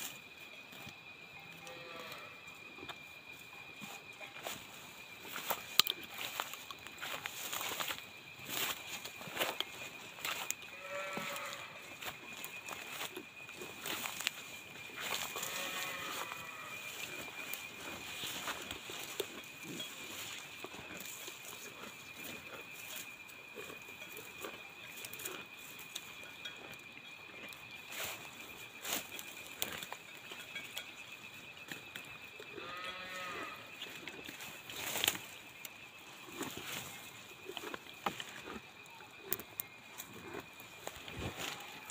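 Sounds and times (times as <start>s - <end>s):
rustling in grass: 3.8s - 22.6s.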